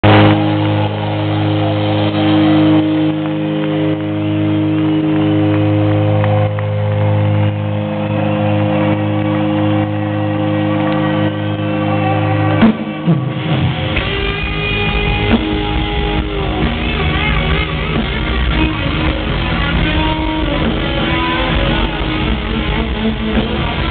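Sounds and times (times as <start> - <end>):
bass guitar: 0.0 - 23.9
drums: 0.0 - 23.9
live rock band droning chord: 0.0 - 23.9
loud electric guitars: 0.0 - 23.9.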